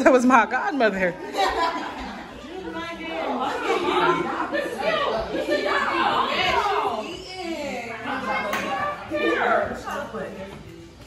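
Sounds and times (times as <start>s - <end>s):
people chatting: 0.0s - 10.9s.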